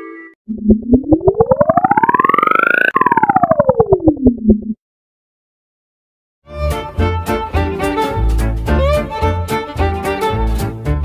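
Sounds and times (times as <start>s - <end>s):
synthesized pulsing siren tone: 0.5s - 4.8s.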